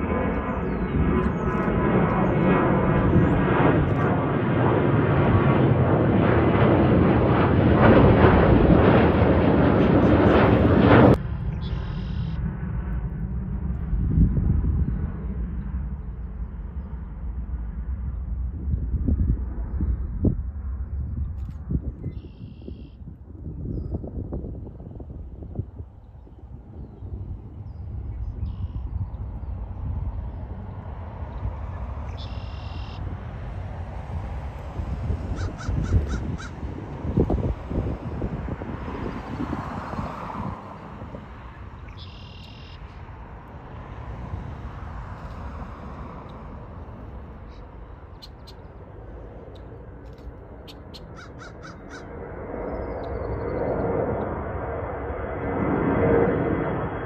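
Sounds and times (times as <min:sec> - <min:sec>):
jet airliner taking off: 0:00.0 - 0:57.0
bird calling: 0:11.5 - 0:12.4, 0:31.3 - 0:33.1, 0:35.3 - 0:36.6, 0:41.8 - 0:43.0, 0:47.4 - 0:48.8, 0:50.6 - 0:52.1.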